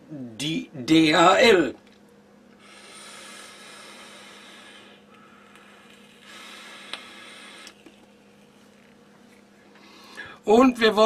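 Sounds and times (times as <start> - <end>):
e-cigarette inhale hiss: 2.6 - 8.1
vapour exhale hiss: 2.6 - 8.1.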